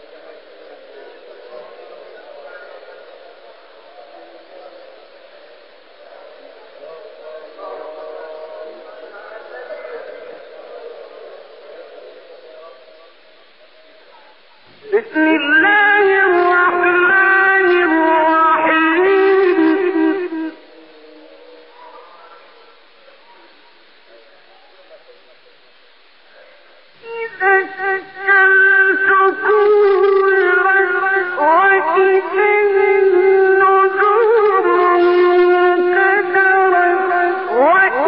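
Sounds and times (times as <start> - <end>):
murmur of audience voices: 0.0 - 38.0
recording hiss: 0.0 - 38.0
man reciting melodically: 14.8 - 22.0, 27.0 - 38.0.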